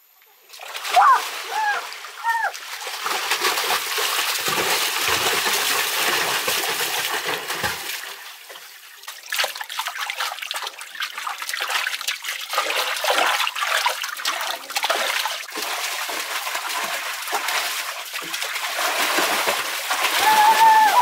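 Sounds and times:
water splashing and churning: 0:00.4 - 0:21.0.

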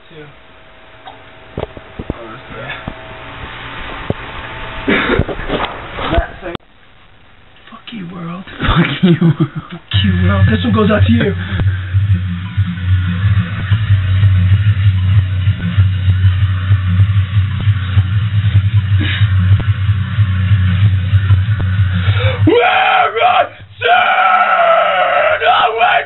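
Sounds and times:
low drone: 0:00.0 - 0:06.6, 0:08.6 - 0:25.4
man screaming vocals: 0:22.2 - 0:26.0.

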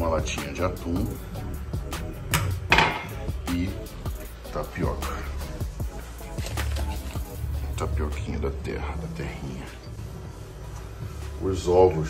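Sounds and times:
background music with a beat: 0:00.0 - 0:11.4
kitchenware knocking on stone counter: 0:02.7 - 0:03.1.

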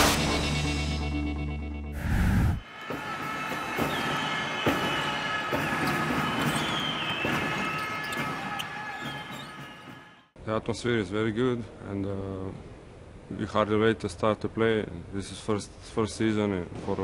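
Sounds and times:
basketballs bouncing on a court: 0:03.7 - 0:09.7
shoe squeaks: 0:05.0 - 0:10.1.

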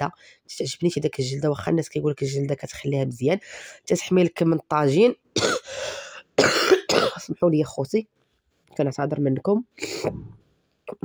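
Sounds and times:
woman coughing: 0:05.4 - 0:05.8, 0:06.4 - 0:07.4.

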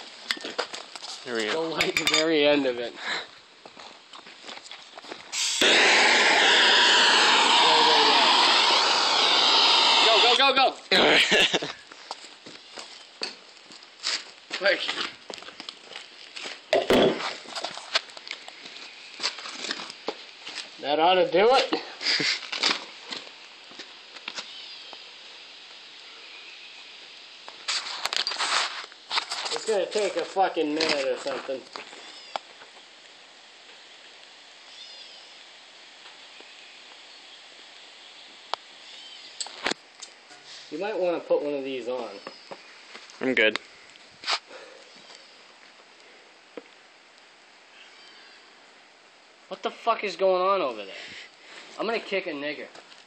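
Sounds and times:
outdoor background hiss: 0:00.0 - 0:53.0
gas torch hissing: 0:05.3 - 0:11.9
faint chirp: 0:25.9 - 0:27.1, 0:34.6 - 0:35.4, 0:38.1 - 0:39.5, 0:44.6 - 0:45.5, 0:47.7 - 0:48.6.

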